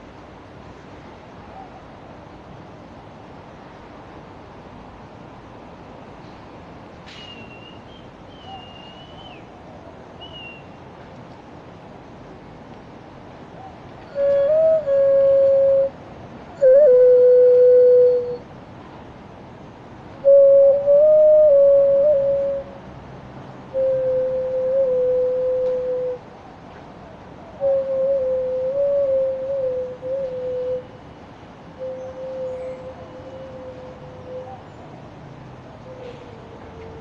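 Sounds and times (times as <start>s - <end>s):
clay flute slow melody: 14.1s - 16.0s, 16.6s - 18.4s, 20.2s - 22.8s, 23.7s - 26.2s, 27.6s - 31.0s, 31.8s - 34.6s.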